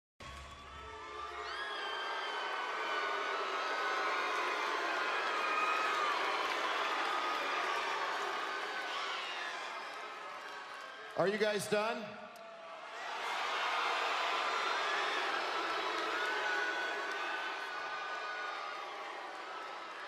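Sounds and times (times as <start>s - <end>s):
arena crowd cheering and shouting: 0.2s - 20.0s.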